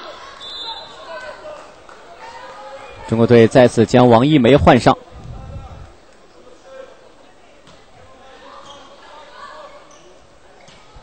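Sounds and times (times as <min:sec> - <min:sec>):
low crowd murmur: 0:00.0 - 0:11.0.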